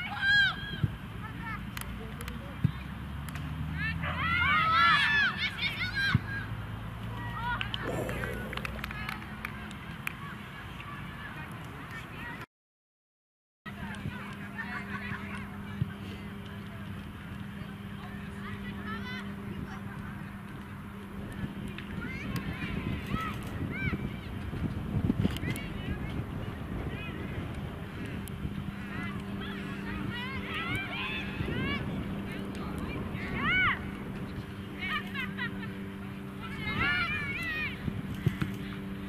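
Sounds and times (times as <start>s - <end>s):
steady low hum: 7.8s - 9.7s.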